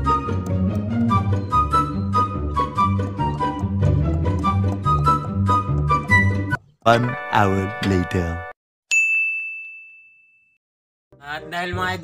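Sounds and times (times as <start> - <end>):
high-pitched bell ding: 8.9 - 10.6.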